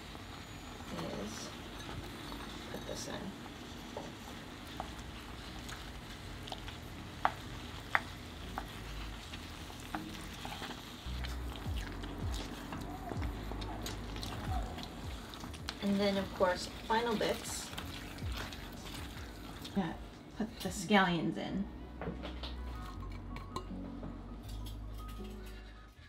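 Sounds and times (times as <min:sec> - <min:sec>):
sauce sizzling and bubbling: 0:00.0 - 0:20.8.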